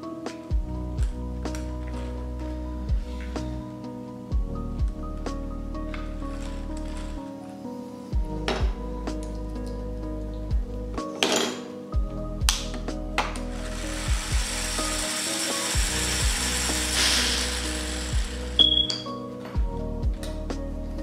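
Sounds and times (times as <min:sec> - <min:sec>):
background music: 0:00.0 - 0:21.0
broad hiss: 0:13.4 - 0:18.9
high squeak: 0:18.6 - 0:19.1.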